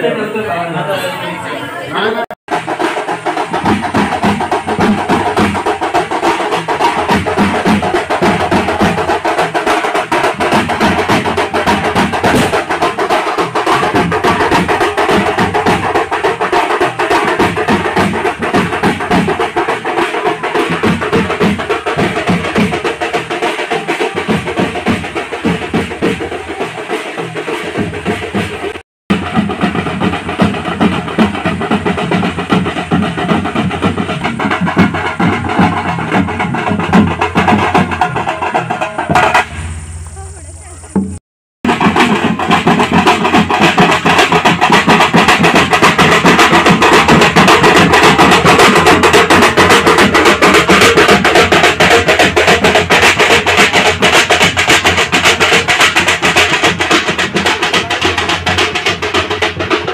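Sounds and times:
crowd voices: 0.0s - 2.4s, 38.2s - 41.2s
barrel drums beaten with sticks: 2.5s - 59.9s.

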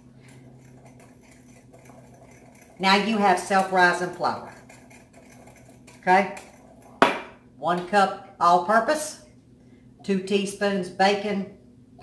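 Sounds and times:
whisk ticking against glass: 0.2s - 7.0s.

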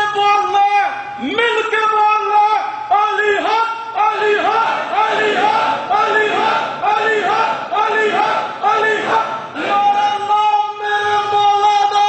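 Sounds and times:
crowd of men chanting: 4.0s - 10.2s.

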